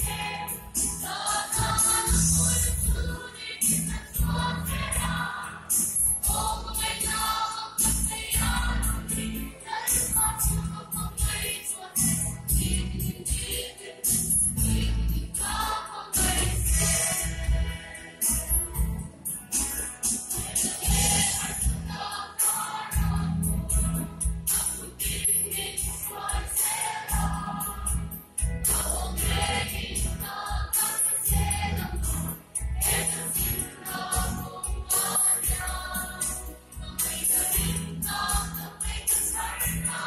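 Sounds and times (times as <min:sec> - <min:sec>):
mixed choir singing gospel: 0:00.0 - 0:40.0.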